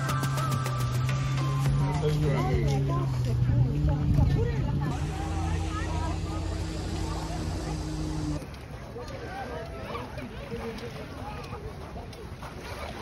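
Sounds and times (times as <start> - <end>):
engine idling: 0.0 - 8.4
chatter of people walking: 1.4 - 13.0.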